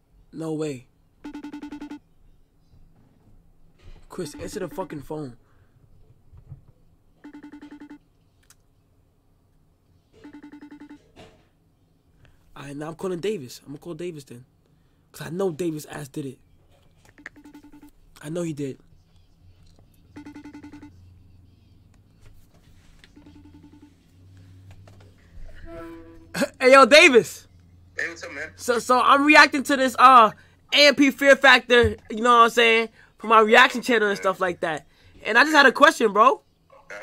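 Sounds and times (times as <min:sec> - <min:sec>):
phone ringing electronic trill: 0:01.2 - 0:02.0, 0:04.2 - 0:05.1, 0:07.2 - 0:08.0, 0:10.2 - 0:11.1, 0:17.2 - 0:17.9, 0:20.2 - 0:20.9, 0:23.2 - 0:24.0.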